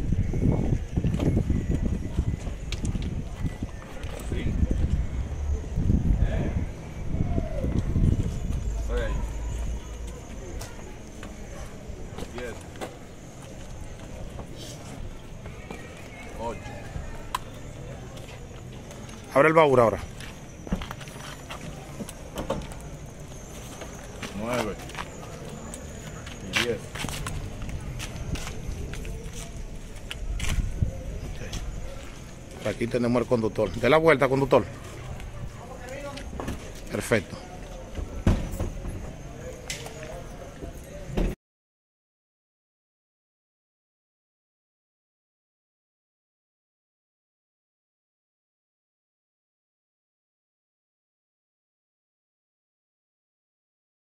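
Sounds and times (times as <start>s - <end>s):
faint background voices: 0.0s - 19.3s, 19.9s - 41.4s
outdoor background noise: 0.0s - 41.4s.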